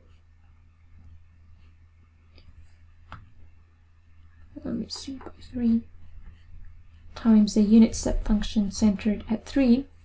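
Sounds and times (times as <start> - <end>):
low steady hum: 0.0 - 10.0
stylus tapping tablet screen: 1.0 - 3.6.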